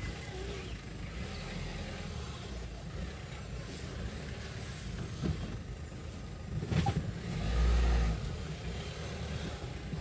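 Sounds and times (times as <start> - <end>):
car engine rumbling: 0.0 - 10.0.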